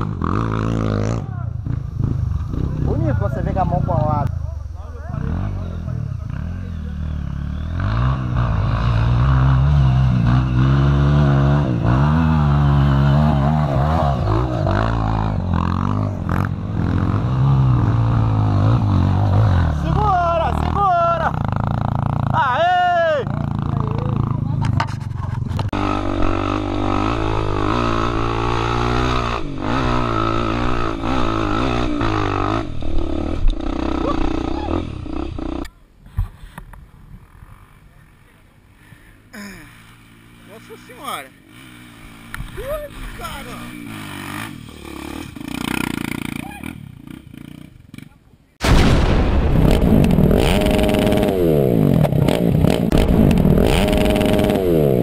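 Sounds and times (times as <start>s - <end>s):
dirt bike engine revving: 0.0s - 35.8s, 39.4s - 55.0s.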